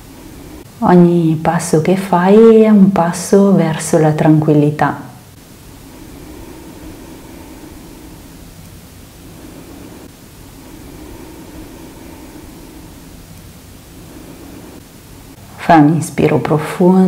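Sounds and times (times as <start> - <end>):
faint low hum: 0.0 - 17.0
soft steady hiss: 0.0 - 17.0.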